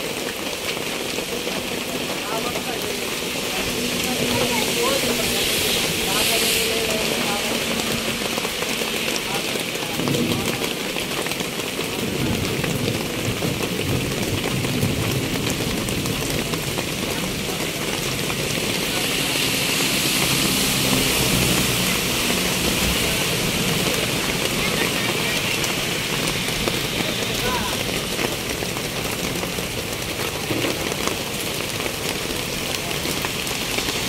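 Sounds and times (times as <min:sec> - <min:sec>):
rain on roofs and ground: 0:00.0 - 0:34.0
people's voices: 0:01.4 - 0:11.2, 0:16.8 - 0:31.1.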